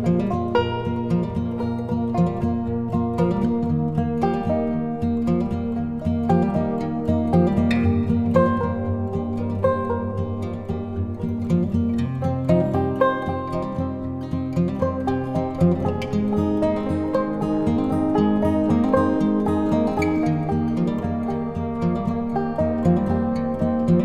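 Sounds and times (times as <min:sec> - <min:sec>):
plucked string background music: 0:00.0 - 0:24.0.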